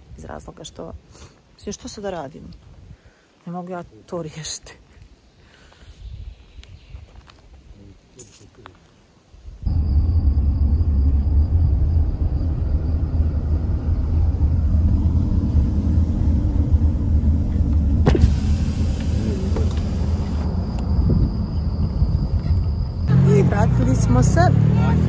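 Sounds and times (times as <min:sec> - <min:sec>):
car cabin road rumble: 0:09.7 - 0:24.5.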